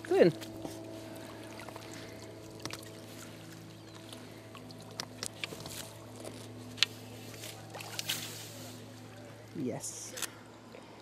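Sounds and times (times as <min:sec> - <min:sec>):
steady low hum: 0:00.0 - 0:11.0
water sloshing and trickling: 0:00.0 - 0:11.0.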